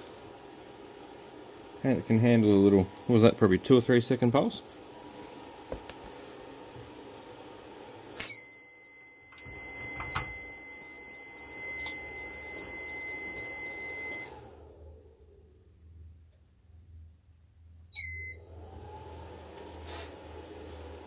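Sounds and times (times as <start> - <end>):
high-pitched alarm beep: 8.2 - 14.3.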